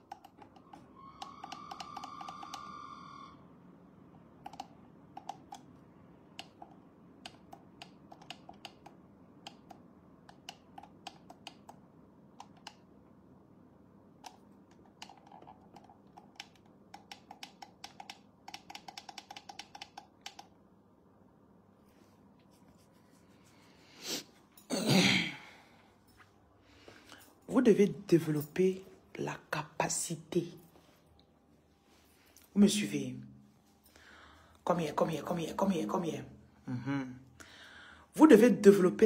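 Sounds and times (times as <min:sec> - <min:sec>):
high steady tone: 0:00.9 - 0:03.5
keyboard key clicks: 0:04.4 - 0:05.7, 0:06.4 - 0:11.8, 0:14.2 - 0:20.6.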